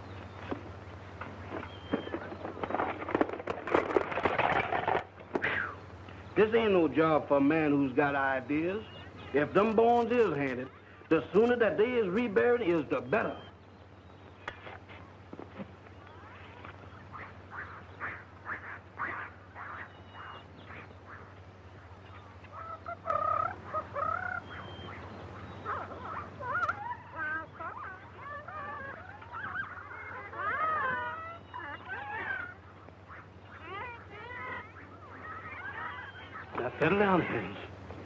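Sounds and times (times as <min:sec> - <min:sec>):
jungle bird calls: 0:00.0 - 0:38.0
low film soundtrack hum: 0:00.0 - 0:38.0
warbling calls: 0:00.0 - 0:38.0.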